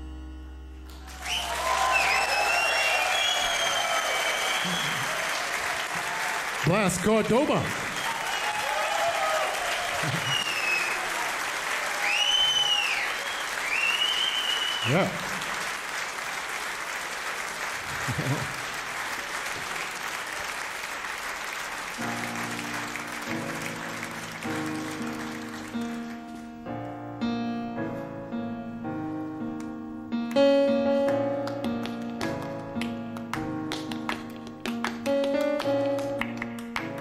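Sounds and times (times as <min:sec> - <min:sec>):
piano playing quiet chords: 0:00.0 - 0:02.4, 0:22.0 - 0:37.0
audience applauding: 0:00.9 - 0:26.6, 0:31.0 - 0:37.0
crowd whistling: 0:01.0 - 0:06.4, 0:07.8 - 0:15.4.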